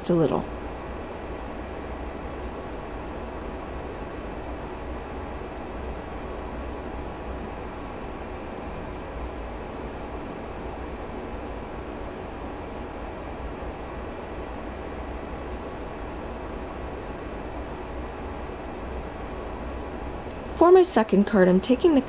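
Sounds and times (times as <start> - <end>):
steady background rumble and hiss: 0.0 - 22.0.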